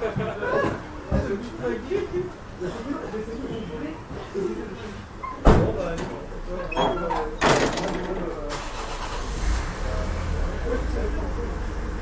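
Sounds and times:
engine rumble: 0:07.2 - 0:12.0.

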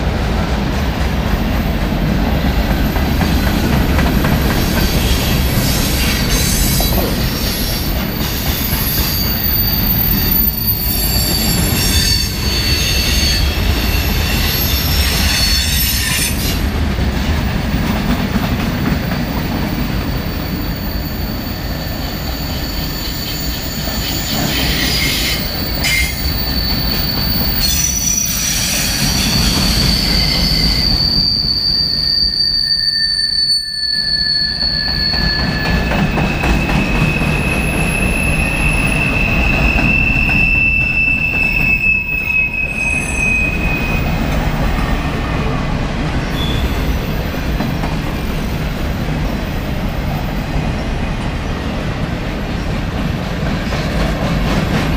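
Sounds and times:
freight train wheels rumbling: 0:00.0 - 0:54.9
high-pitched wheel squeals: 0:04.7 - 0:16.6, 0:20.3 - 0:44.4, 0:46.3 - 0:47.2.

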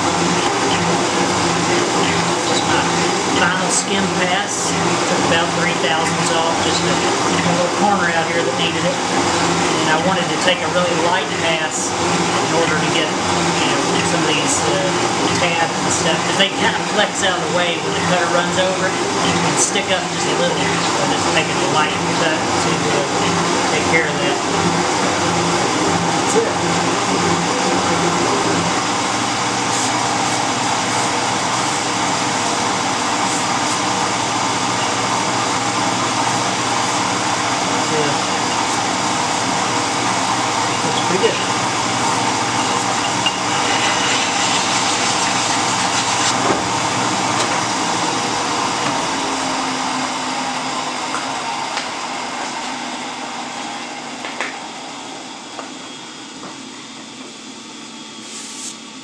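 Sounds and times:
metal shaper running: 0:18.4 - 0:49.7.

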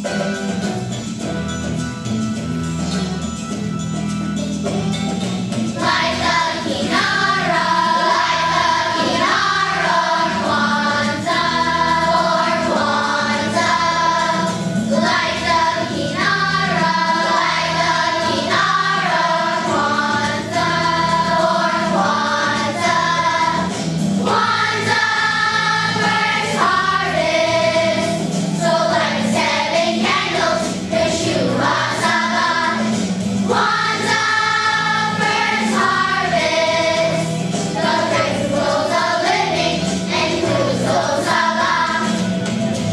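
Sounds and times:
children's choir singing: 0:05.7 - 0:42.9.

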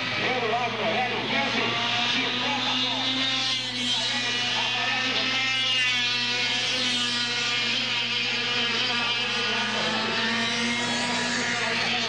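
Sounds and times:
kart engines racing past: 0:00.0 - 0:12.0.

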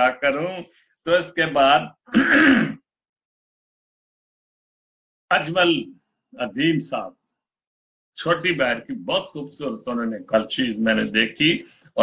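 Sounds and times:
man clearing his throat: 0:02.1 - 0:02.8.

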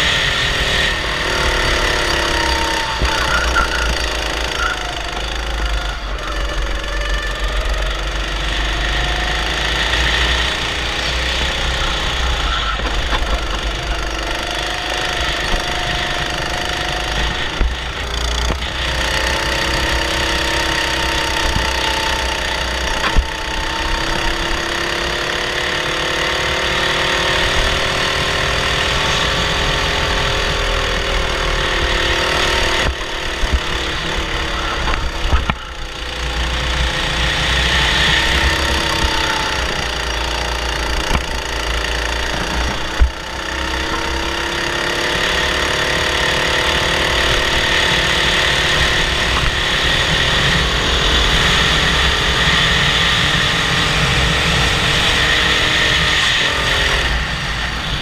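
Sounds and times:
kart engine running hard: 0:00.0 - 0:58.0.

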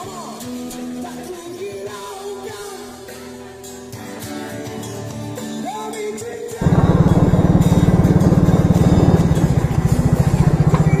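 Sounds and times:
small motorcycle engine idling: 0:06.6 - 0:11.0.

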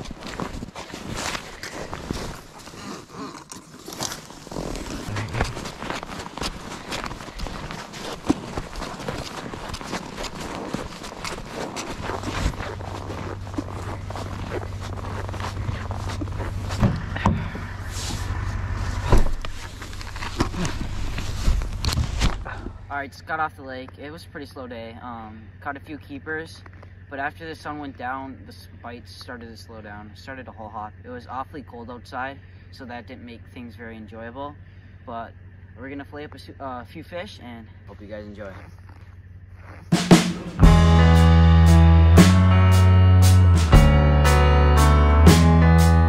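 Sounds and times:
gear scraping and knocking: 0:00.0 - 0:22.5
footsteps crunching through snow: 0:00.0 - 0:22.6, 0:37.9 - 0:42.4
steady low hum: 0:00.0 - 0:41.9.

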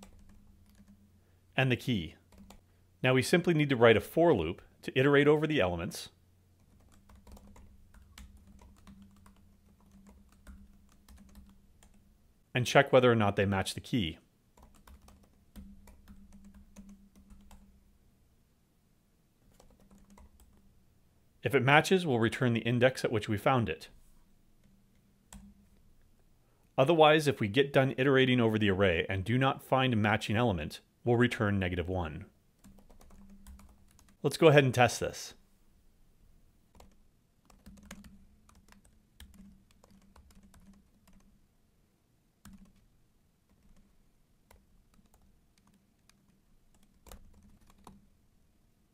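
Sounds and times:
faint typing on keyboard: 0:00.0 - 0:01.2, 0:01.8 - 0:02.8, 0:06.0 - 0:12.1, 0:13.8 - 0:17.8, 0:19.4 - 0:20.8, 0:24.6 - 0:26.8, 0:32.6 - 0:34.3, 0:36.7 - 0:41.4, 0:42.4 - 0:48.2
low steady hum: 0:00.0 - 0:48.9.

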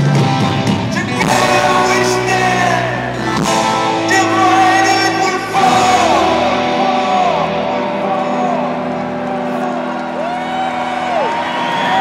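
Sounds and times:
sustained rock band chord: 0:00.0 - 0:10.3
audience cheering and whooping: 0:08.0 - 0:12.0.

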